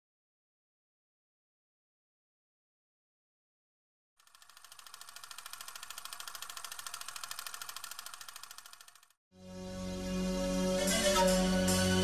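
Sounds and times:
fast mechanical rattle: 4.2s - 9.2s.

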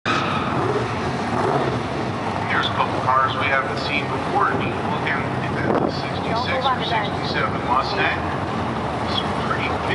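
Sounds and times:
race car engines running: 0.1s - 9.9s.

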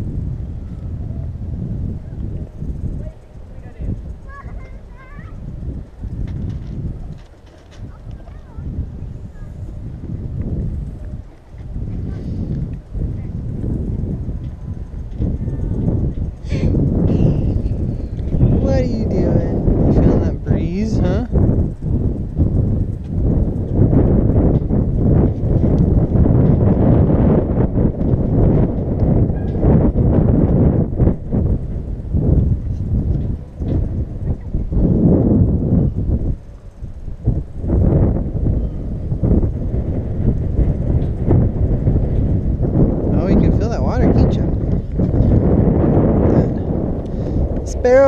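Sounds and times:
wind rumbling on microphone: 0.0s - 48.0s.

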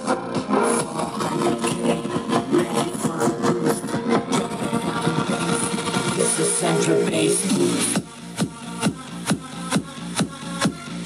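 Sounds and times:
music through portable speaker: 0.0s - 11.0s.

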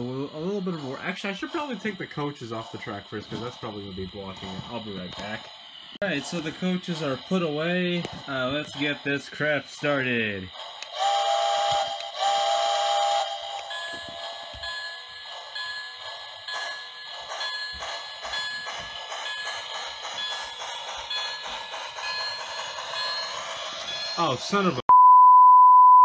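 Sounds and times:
rhythmic chuffing: 0.0s - 24.8s
locomotive bell ringing: 10.9s - 24.8s
steam whistle blast: 11.0s - 13.3s.

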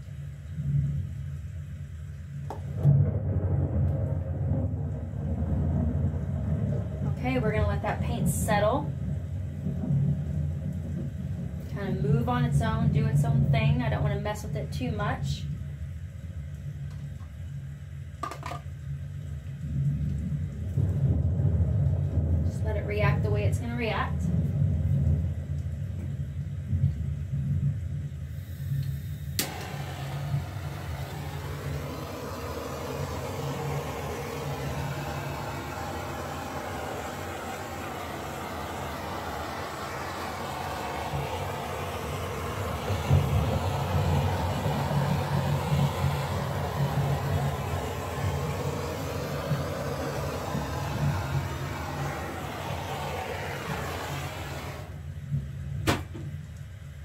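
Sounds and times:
steady low hum: 0.0s - 18.1s, 18.8s - 57.0s
flame hissing: 28.0s - 55.4s
torch clicking alight: 28.7s - 55.0s.

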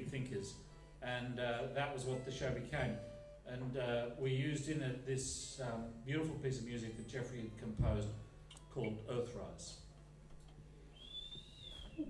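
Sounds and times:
low steady hum: 0.0s - 12.0s
faint high-pitched whistling tone: 10.9s - 12.0s.

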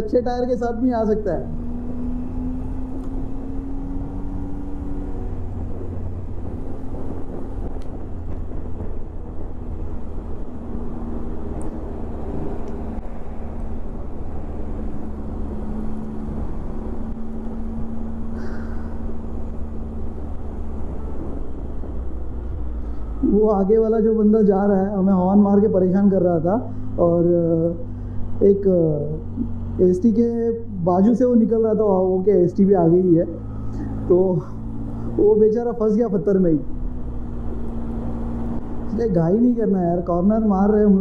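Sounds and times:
motorcycle engine running: 1.1s - 21.9s
wind rushing over microphone: 1.4s - 25.1s.

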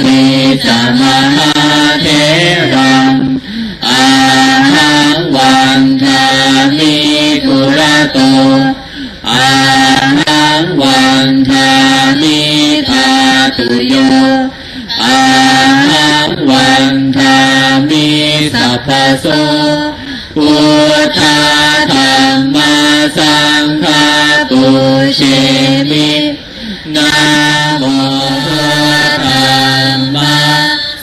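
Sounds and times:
voices chanting: 0.0s - 31.0s.

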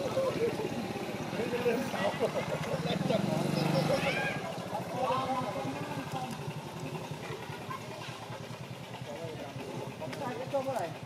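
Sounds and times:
faint voices: 0.0s - 11.0s
small engine running: 0.0s - 11.0s.

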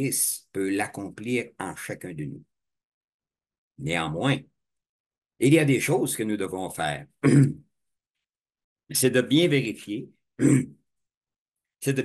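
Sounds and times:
man speaking: 0.0s - 2.5s, 3.8s - 4.5s, 5.4s - 7.4s, 8.9s - 10.2s
man clearing his throat: 7.2s - 7.6s, 10.4s - 10.8s.

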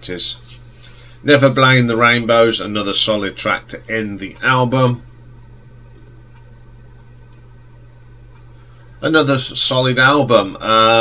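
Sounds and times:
faint background hiss: 0.0s - 11.0s
low hum: 0.0s - 11.0s.

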